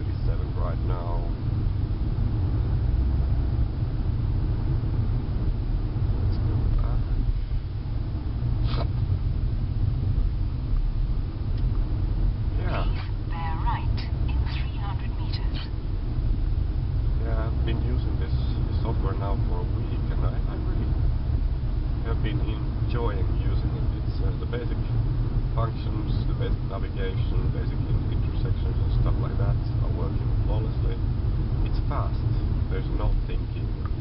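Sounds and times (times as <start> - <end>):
car interior rumble: 0.0 - 34.0.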